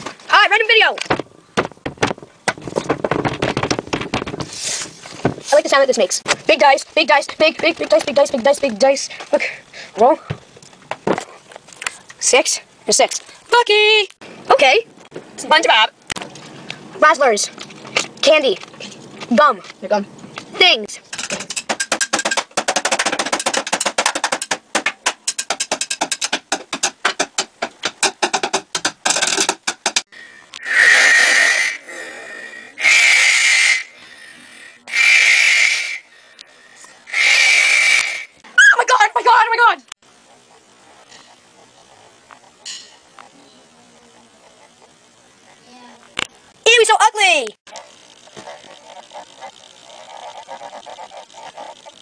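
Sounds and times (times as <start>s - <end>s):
loud raspy noises: 30.1s - 52.0s.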